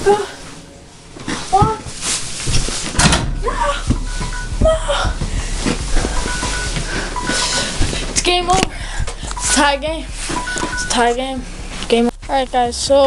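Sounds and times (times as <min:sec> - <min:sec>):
music: 0:00.0 - 0:13.0
short electronic beeps: 0:03.3 - 0:11.7.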